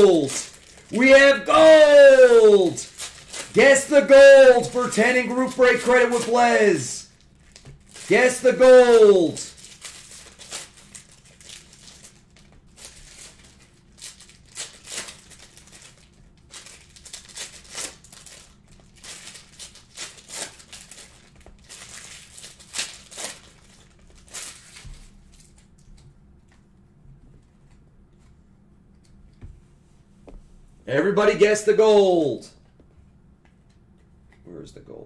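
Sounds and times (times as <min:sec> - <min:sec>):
card pack wrappers crinkling: 0:00.0 - 0:25.8.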